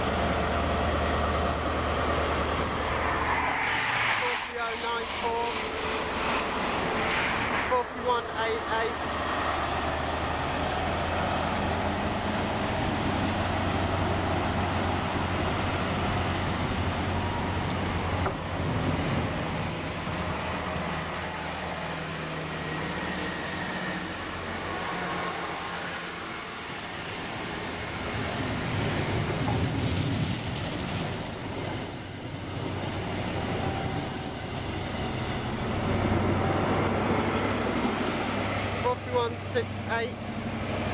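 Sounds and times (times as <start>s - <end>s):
diesel train engine droning: 0.0s - 40.9s
train wheels rumbling on rail: 0.0s - 40.9s.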